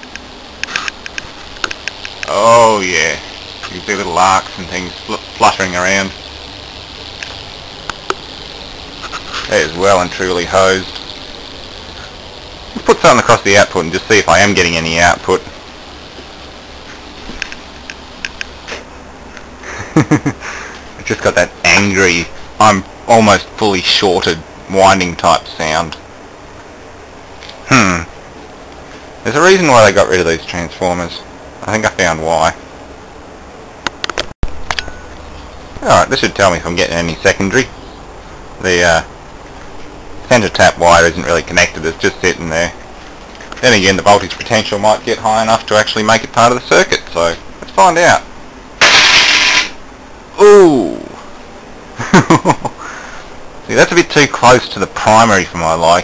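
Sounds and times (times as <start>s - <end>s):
sharp electrical arc snaps: 0.0s - 19.5s, 48.8s - 49.9s
transformer humming with faint hiss: 0.0s - 56.0s.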